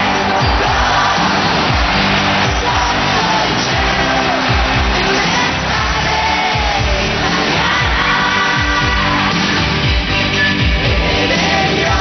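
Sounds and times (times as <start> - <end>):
pop-rock song with singing: 0.0 - 12.0.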